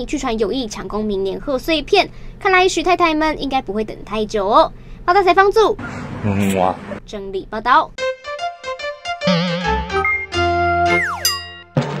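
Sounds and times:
bright synth chord: 8.0s - 11.8s
whistle-like tone sliding down: 10.9s - 11.3s.

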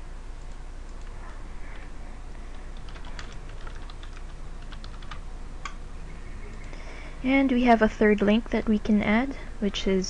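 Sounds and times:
computer keyboard typing: 2.5s - 5.8s.

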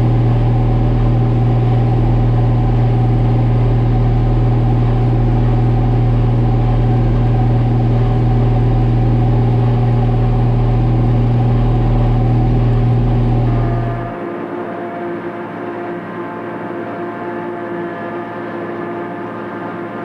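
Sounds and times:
tractor engine drone: 0.0s - 20.0s.

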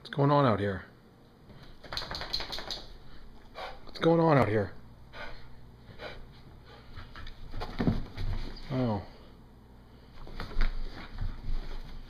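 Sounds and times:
dog panting: 5.1s - 7.3s.

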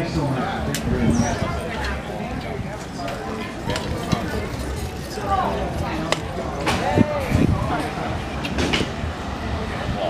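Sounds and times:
people chattering: 0.0s - 10.0s.

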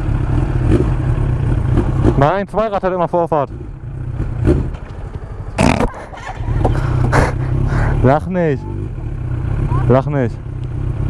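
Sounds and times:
motorcycle engine running low: 0.0s - 11.0s.

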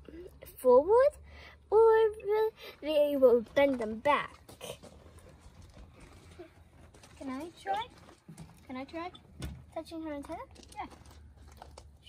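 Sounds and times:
people talking: 0.0s - 4.8s, 7.2s - 7.9s, 8.7s - 9.2s, 9.8s - 10.9s.

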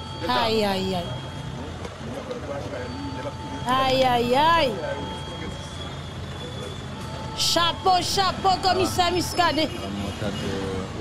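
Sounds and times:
faint high-pitched tone: 2.7s - 9.8s.

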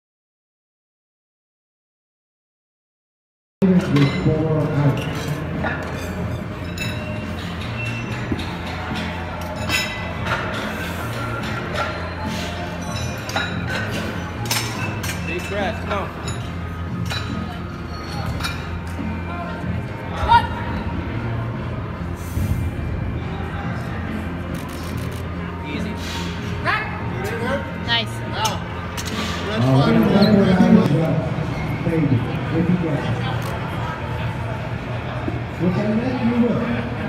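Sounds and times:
crowd chatter: 3.6s - 12.9s, 15.6s - 37.0s
background music: 3.6s - 37.0s.

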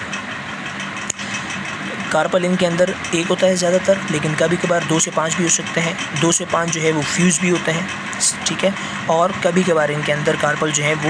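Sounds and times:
machine-like background hum: 0.0s - 11.0s.

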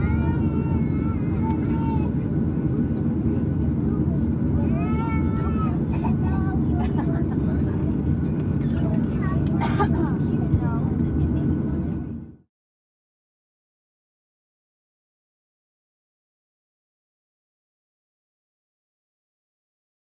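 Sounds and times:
jet engines idling rumble: 0.0s - 12.4s
passengers talking faintly: 0.0s - 12.4s.

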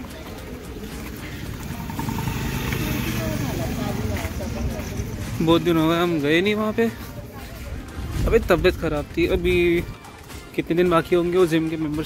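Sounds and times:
vehicle engine running: 0.4s - 7.4s.

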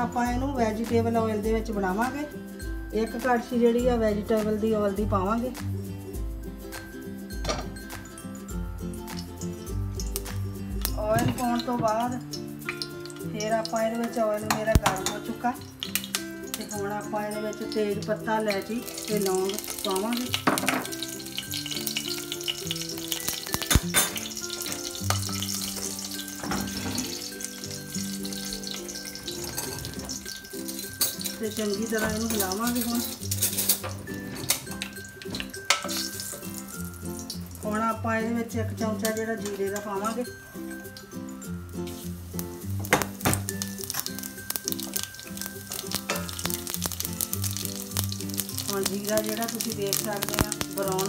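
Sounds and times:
slow music melody: 0.0s - 51.0s
spices sizzling in hot oil: 0.0s - 51.0s.

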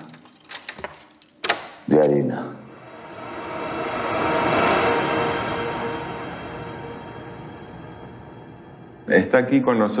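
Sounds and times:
keys jangling: 0.0s - 1.8s.

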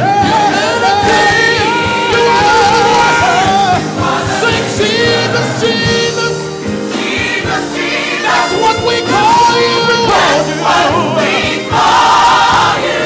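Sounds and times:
band accompaniment: 0.0s - 13.0s
choir singing: 0.0s - 13.0s
men singing gospel runs: 0.0s - 13.0s.

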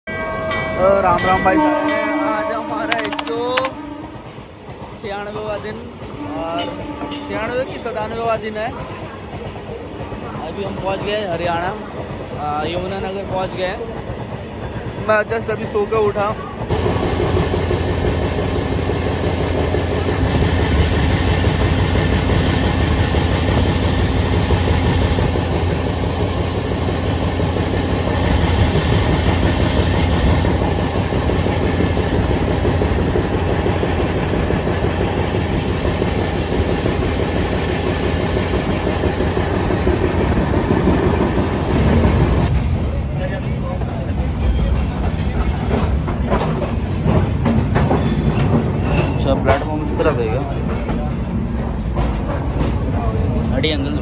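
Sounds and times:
train wheels rumbling on track: 0.1s - 54.0s
clickety-clack of rail joints: 0.2s - 54.0s.

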